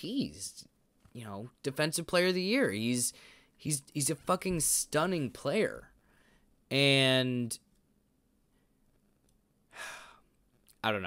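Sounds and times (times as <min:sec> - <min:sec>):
man speaking: 0:00.0 - 0:06.0, 0:06.7 - 0:07.6, 0:10.7 - 0:11.0
man breathing: 0:03.1 - 0:03.6, 0:06.0 - 0:06.6, 0:09.7 - 0:10.4.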